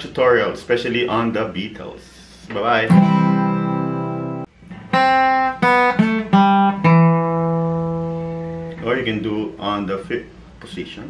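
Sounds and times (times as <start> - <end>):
acoustic guitar notes: 2.4 - 10.1.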